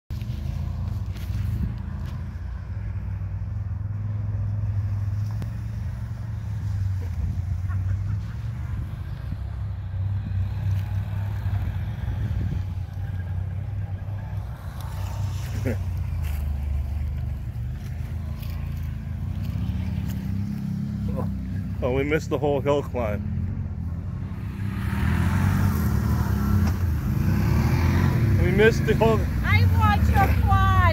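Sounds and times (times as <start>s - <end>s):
engines running at low revs: 0.1s - 30.9s.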